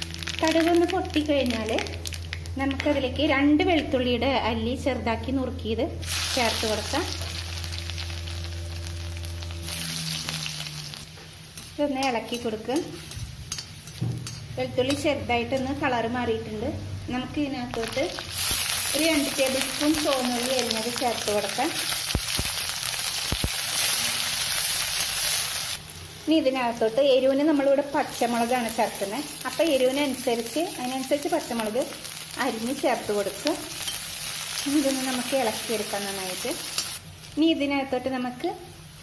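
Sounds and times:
garlic sizzling in hot oil: 0.0s - 3.1s, 6.0s - 39.0s
low steady hum: 0.0s - 24.8s
metal spatula stirring: 11.6s - 15.8s.

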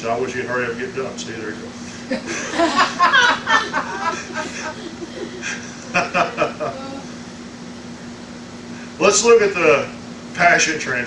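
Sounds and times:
steady low hum: 0.0s - 11.0s
man laughing: 1.9s - 7.1s.

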